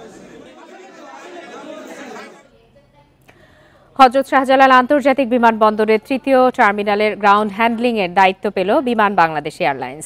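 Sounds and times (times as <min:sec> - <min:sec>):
crowd chatter: 0:00.0 - 0:03.2.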